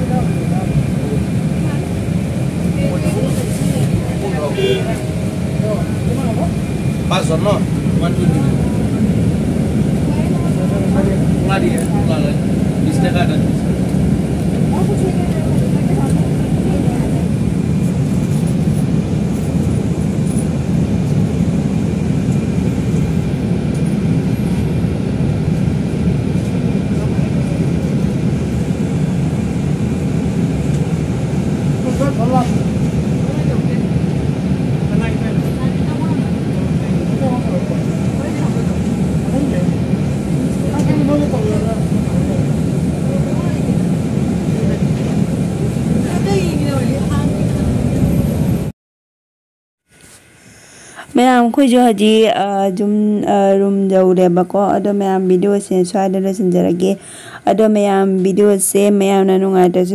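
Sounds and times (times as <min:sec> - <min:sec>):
bus engine and road rumble: 0:00.0 - 0:48.7, 0:49.9 - 0:59.9
passengers' voices: 0:00.0 - 0:48.7, 0:50.0 - 0:59.9.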